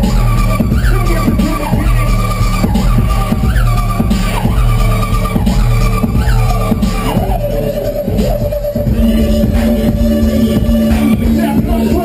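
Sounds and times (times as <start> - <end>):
heavy pulsing bass: 0.0 - 12.0
high screeching synth lead: 0.0 - 12.0.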